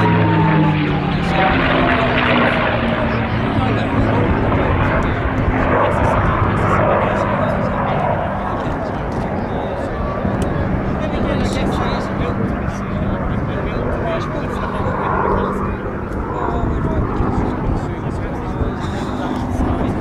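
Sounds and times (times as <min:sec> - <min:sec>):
propeller plane engine passing: 0:00.0 - 0:20.0.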